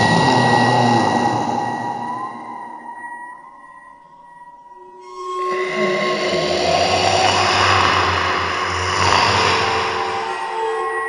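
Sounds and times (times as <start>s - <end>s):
low drone: 0.0s - 3.0s, 5.4s - 11.0s
loud rushing noise: 5.6s - 10.6s.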